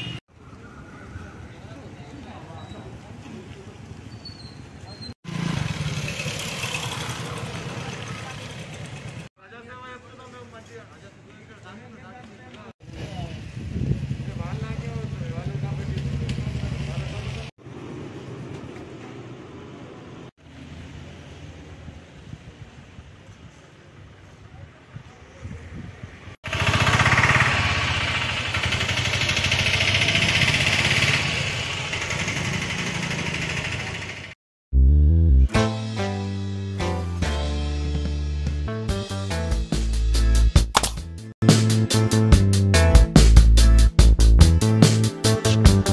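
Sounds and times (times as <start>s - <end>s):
voices: 14.2s - 17.5s
engine running: 26.4s - 34.4s.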